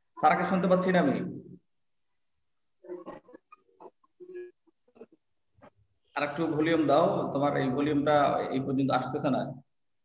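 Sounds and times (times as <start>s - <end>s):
faint garbled voice: 2.6s - 7.9s.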